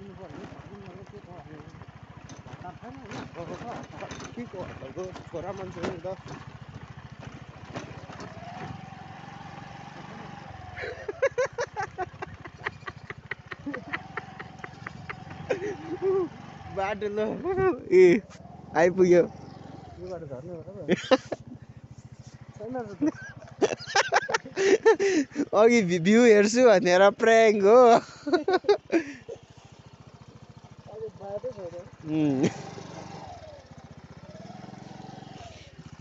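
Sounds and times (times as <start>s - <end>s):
people talking: 0.0s - 1.8s, 2.6s - 6.2s, 15.5s - 18.2s, 18.8s - 19.3s, 19.9s - 21.3s, 22.6s - 29.2s, 30.9s - 32.6s
motorcycle engine throbbing: 0.0s - 36.0s.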